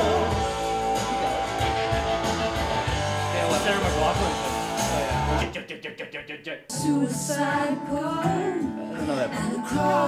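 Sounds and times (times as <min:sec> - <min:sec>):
rock band playing: 0:00.0 - 0:05.5.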